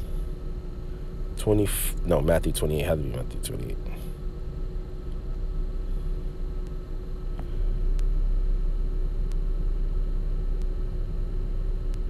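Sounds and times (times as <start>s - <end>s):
constant hum: 0.0s - 12.0s
low background rumble: 0.0s - 12.0s.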